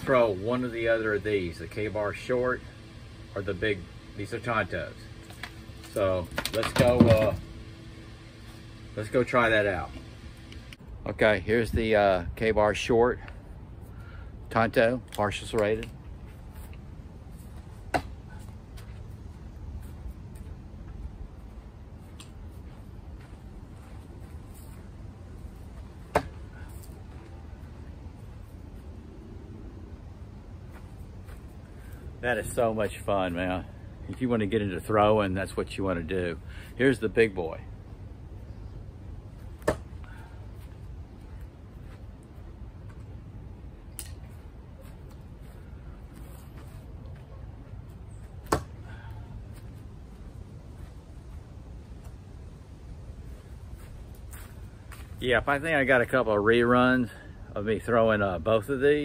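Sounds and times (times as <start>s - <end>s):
low outdoor background: 0.0s - 59.0s.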